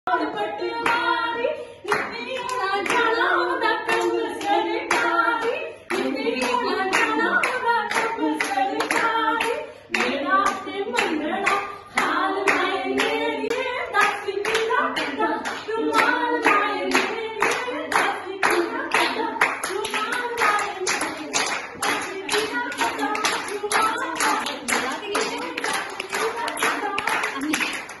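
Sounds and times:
hand-clapping steady beat: 0:00.1 - 0:28.0
women singing folk verses: 0:00.1 - 0:28.0.

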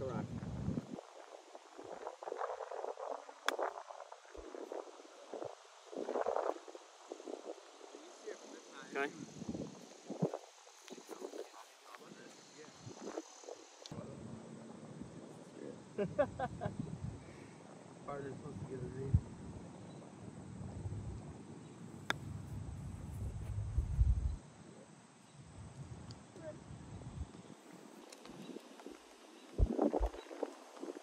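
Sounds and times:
light breeze: 0:00.0 - 0:31.0.

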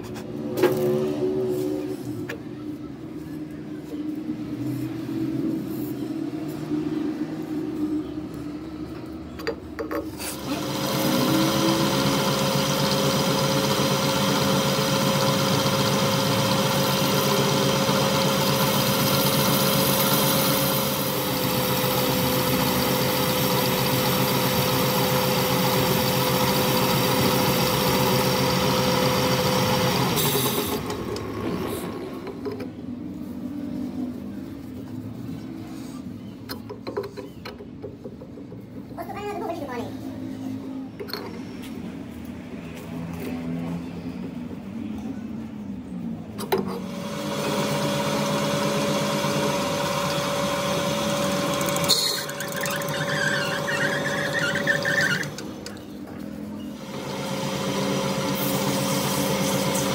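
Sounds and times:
metal lathe humming: 0:10.3 - 0:31.3, 0:46.9 - 0:55.8.

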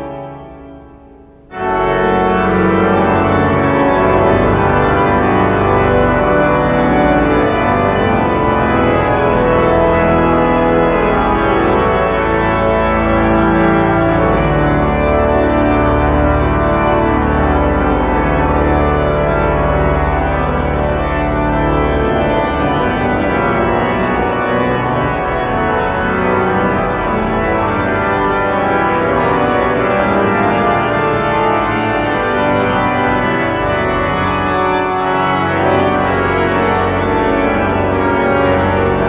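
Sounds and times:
pipe organ chords: 0:00.0 - 0:39.0.

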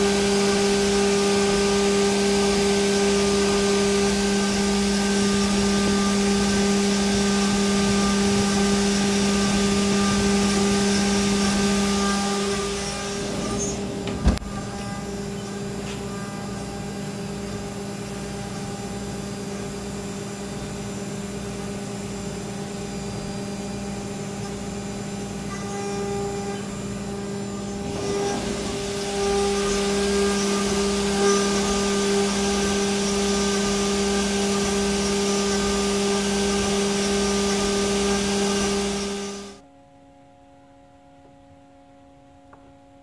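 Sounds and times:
milling machine humming: 0:00.0 - 0:39.6.

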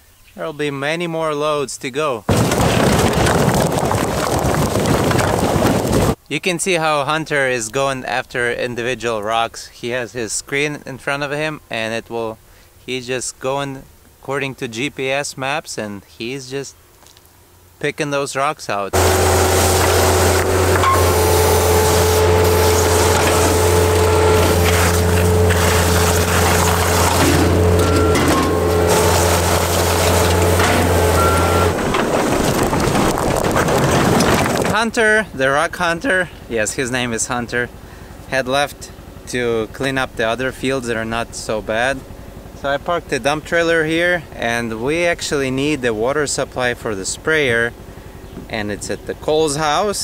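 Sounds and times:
rocks tumbling from dump trailer: 0:02.3 - 0:06.2, 0:19.0 - 0:36.2
hydraulic whine: 0:19.0 - 0:34.7
diesel engine running under load: 0:19.0 - 0:35.4, 0:37.2 - 0:45.7, 0:47.4 - 0:48.4.

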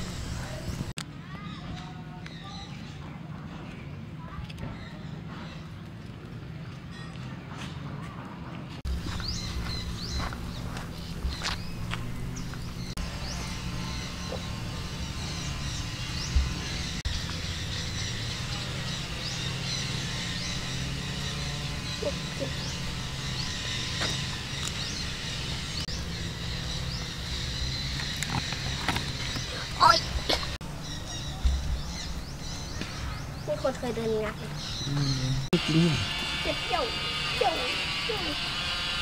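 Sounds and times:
steady low hum: 0:00.0 - 0:01.0, 0:08.8 - 0:39.0
birds chirping: 0:00.0 - 0:07.8, 0:08.8 - 0:39.0.

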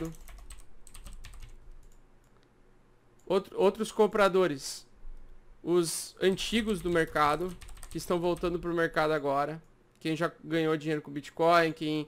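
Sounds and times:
typing on computer keyboard: 0:00.0 - 0:02.0, 0:06.4 - 0:08.8.

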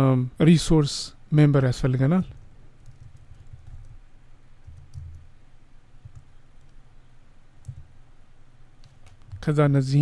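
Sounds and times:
low steady hum: 0:00.0 - 0:10.0
keyboard keys clicking: 0:04.7 - 0:05.2.

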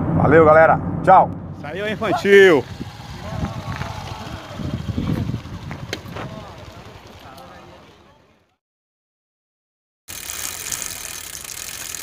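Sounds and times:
wind rush: 0:00.0 - 0:06.9
road noise: 0:00.0 - 0:08.6
bike freewheel hub ticking: 0:02.3 - 0:07.8, 0:10.1 - 0:12.0.

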